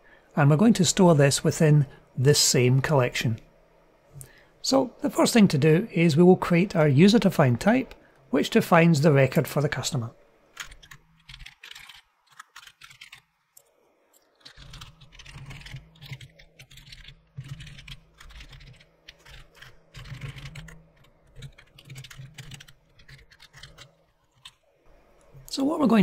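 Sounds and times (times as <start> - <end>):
low steady hum: 0.0 - 26.0
typing on computer keyboard: 10.6 - 13.2, 14.4 - 24.6.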